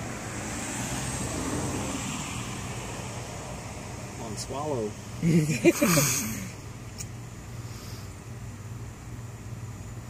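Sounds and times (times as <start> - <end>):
low mechanical hum: 4.9 - 10.0.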